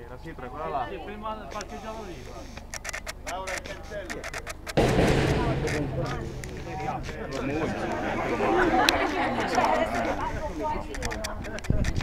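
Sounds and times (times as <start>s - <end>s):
people talking: 3.3s - 12.0s.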